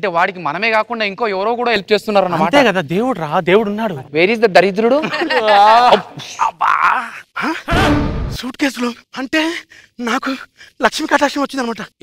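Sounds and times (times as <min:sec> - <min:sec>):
man groaning: 0:05.5 - 0:08.2
loud low rumbling burst: 0:07.7 - 0:08.5.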